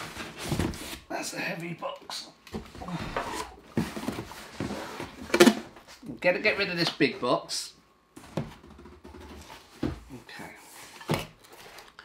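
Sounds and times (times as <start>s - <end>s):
cardboard box rustling and scraping: 2.8s - 5.5s.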